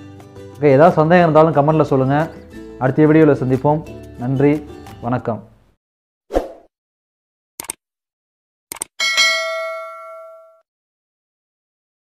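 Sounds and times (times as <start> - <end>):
bright bell ding: 9.0 - 10.6.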